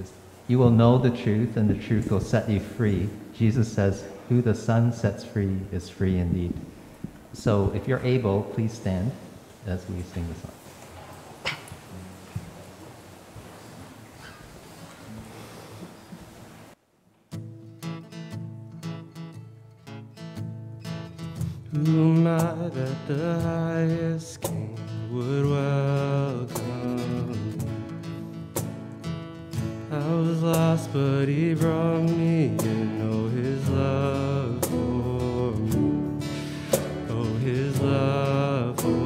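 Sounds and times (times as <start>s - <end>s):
strummed acoustic guitar: 11.5s - 16.7s, 17.3s - 39.0s
person singing melody: 21.7s - 28.3s, 29.8s - 39.0s.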